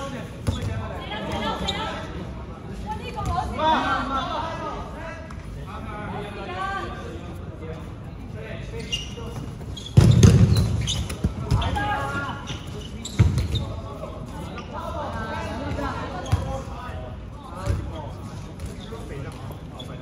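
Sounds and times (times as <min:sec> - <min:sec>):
players' voices: 0:00.0 - 0:20.0
dodgeballs thudding: 0:09.9 - 0:12.1.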